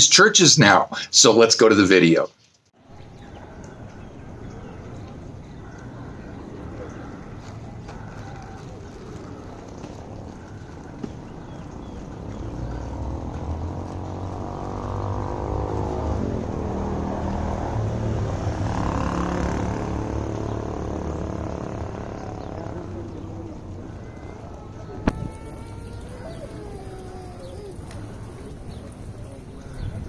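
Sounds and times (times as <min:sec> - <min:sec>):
engine passing by: 0:02.8 - 0:30.0.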